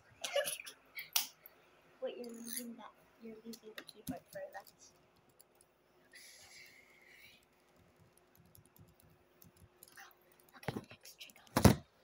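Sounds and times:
soft clicks and taps: 7.4 - 11.9.

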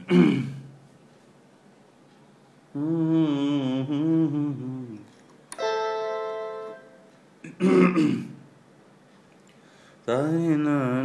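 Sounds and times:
man clearing his throat: 0.0 - 0.7, 7.4 - 8.4.

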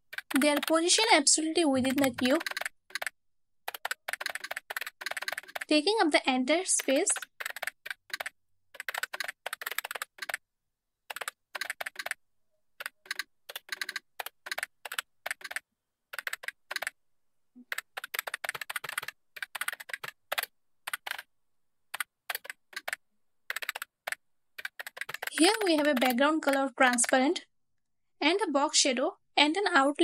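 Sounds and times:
computer keyboard typing: 0.1 - 1.1, 1.7 - 5.8, 6.7 - 10.4, 11.1 - 12.2, 12.8 - 17.0, 17.6 - 21.3, 21.9 - 27.2.

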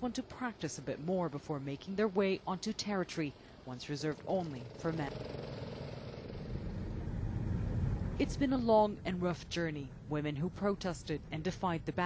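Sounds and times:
go-kart engine: 3.3 - 8.2.

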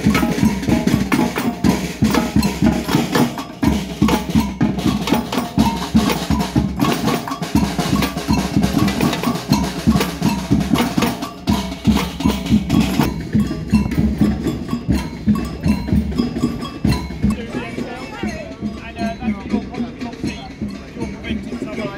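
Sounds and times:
bass drums: 0.0 - 21.9
higher drums struck with sticks: 0.0 - 21.9.

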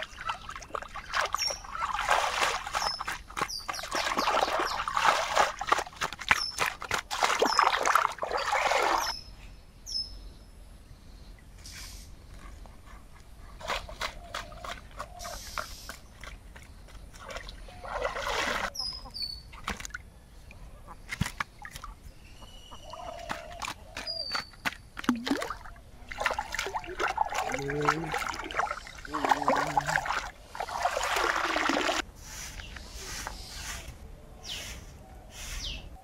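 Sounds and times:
water splashing and sloshing: 0.0 - 9.2, 13.6 - 20.1, 20.9 - 22.1, 22.9 - 32.6
bird chirping: 0.1 - 2.0, 2.7 - 5.0, 7.4 - 12.7, 18.7 - 25.0, 32.6 - 36.0.

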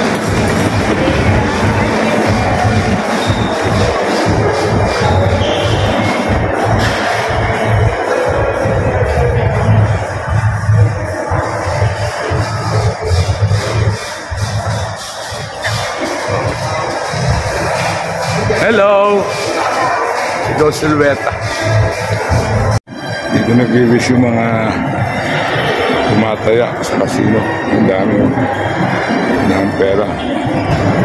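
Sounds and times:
electronic music with bass beat: 0.0 - 31.0.

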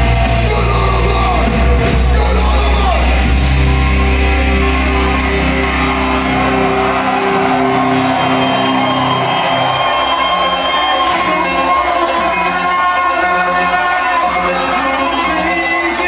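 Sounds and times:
deep bass: 0.0 - 7.2
heavy metal band playing live: 0.0 - 16.0.

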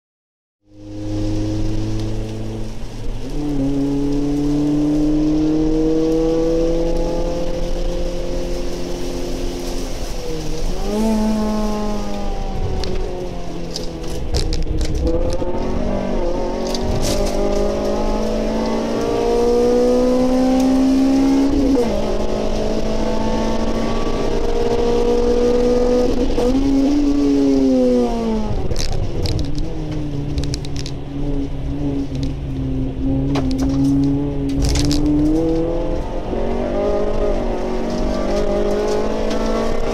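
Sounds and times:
car engine revving: 0.6 - 39.9.

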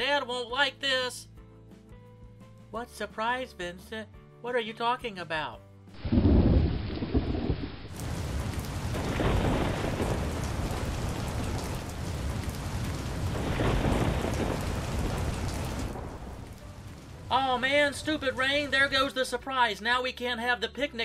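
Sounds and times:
thunder rumbling: 6.0 - 18.7
steady rain: 6.0 - 19.1.

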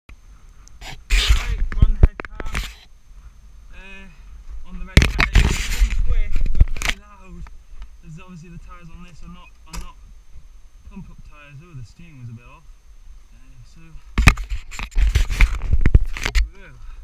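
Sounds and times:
rumbling noise on microphone: 0.1 - 12.3, 13.0 - 17.0.

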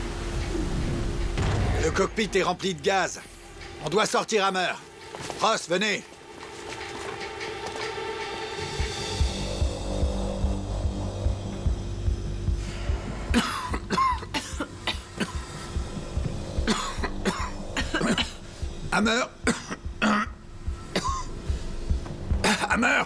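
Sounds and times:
film score with low pulse: 0.0 - 23.0
men coughing: 13.3 - 15.7, 16.6 - 21.4, 22.4 - 23.0.

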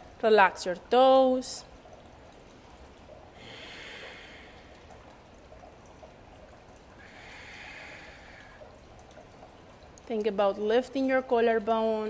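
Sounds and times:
woman breathing deeply: 3.4 - 4.7, 7.0 - 8.6.

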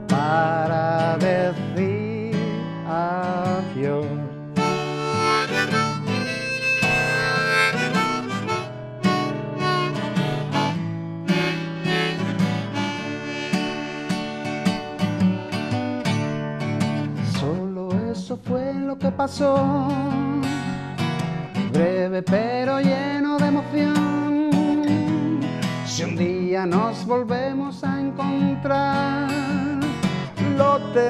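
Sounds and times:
acoustic guitar strumming: 0.0 - 31.0
harmonica solo: 4.6 - 16.4.

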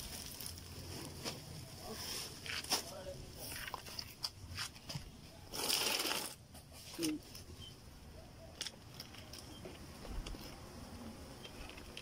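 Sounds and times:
plastic bag crackling: 0.0 - 4.2.

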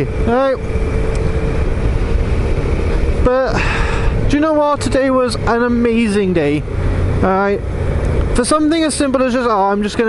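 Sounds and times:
wind rush on microphone: 0.0 - 4.5
motorcycle engine: 0.0 - 10.0.

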